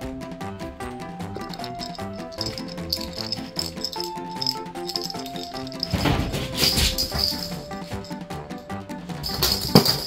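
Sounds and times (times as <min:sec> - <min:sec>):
background music: 0:00.0 - 0:10.0
plastic rattle ball shaken: 0:01.4 - 0:08.2, 0:09.2 - 0:10.0.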